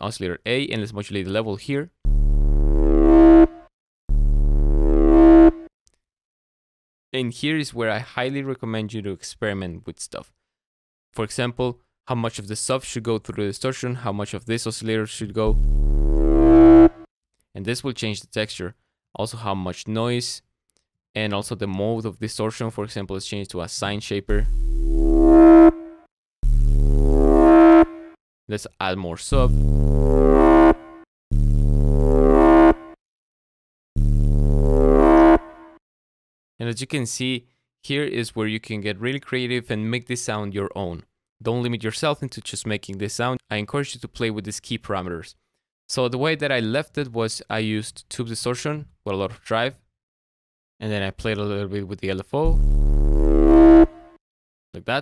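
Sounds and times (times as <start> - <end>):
distorted synth bass note: 2.1 - 5.6, 15.5 - 17.0, 24.3 - 28.2, 29.3 - 33.0, 34.0 - 35.8, 52.5 - 54.1.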